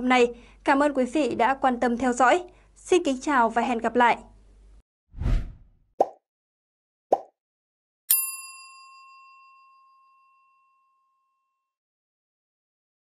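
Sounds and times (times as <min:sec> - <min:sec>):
low whoosh: 0:05.2 - 0:05.8
bright bell-like ding: 0:08.1 - 0:11.2.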